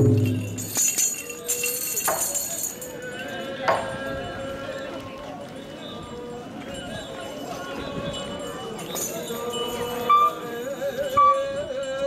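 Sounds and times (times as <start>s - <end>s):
faint metallic jingling: 0.0s - 4.9s, 5.8s - 12.0s
crowd chattering: 0.0s - 12.0s.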